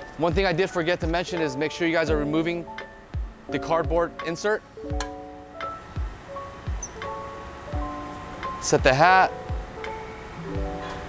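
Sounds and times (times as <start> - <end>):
kick drum thumps: 0.3 - 1.2, 3.2 - 4.0, 8.8 - 9.8.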